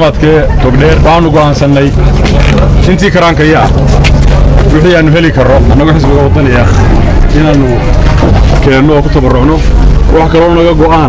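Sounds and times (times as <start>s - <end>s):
man speaking into microphones: 0.0s - 3.9s, 4.7s - 7.8s, 8.6s - 11.0s
low hum and rumble: 0.0s - 11.0s.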